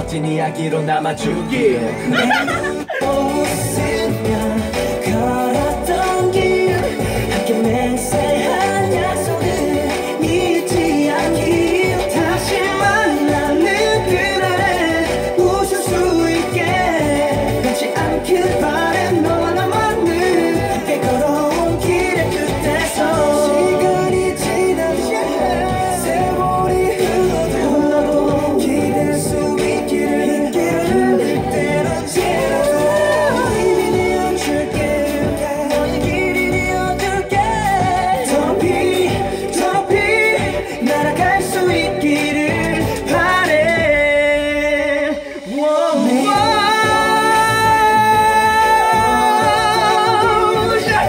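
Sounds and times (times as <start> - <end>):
pop song with singing voice: 0.0 - 51.0.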